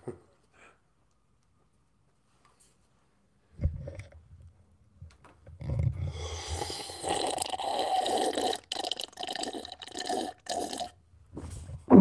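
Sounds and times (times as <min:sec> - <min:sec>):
man gulping a drink: 0:03.6 - 0:04.5, 0:05.4 - 0:11.0.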